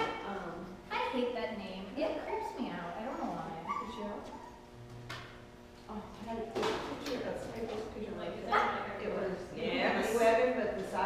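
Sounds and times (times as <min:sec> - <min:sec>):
dog whining and yipping: 0:03.2 - 0:04.6.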